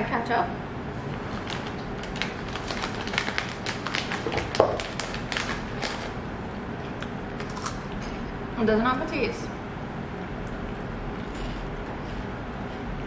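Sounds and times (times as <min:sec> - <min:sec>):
plastic snack packet crinkling: 0:01.3 - 0:06.2
potato sticks crunching: 0:07.4 - 0:07.9.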